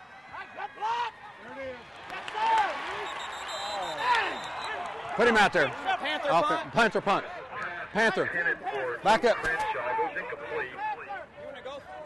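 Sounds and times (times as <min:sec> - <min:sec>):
people shouting and yelling: 0:00.0 - 0:12.0.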